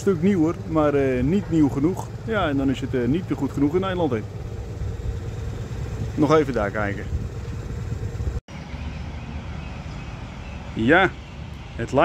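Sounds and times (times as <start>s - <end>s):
distant excavator engine rumble: 0.0s - 12.0s.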